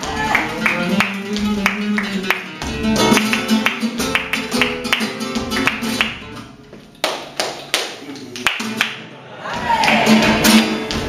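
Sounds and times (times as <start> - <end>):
sharp handclaps: 0.0 - 6.4, 7.0 - 9.0, 9.6 - 11.0.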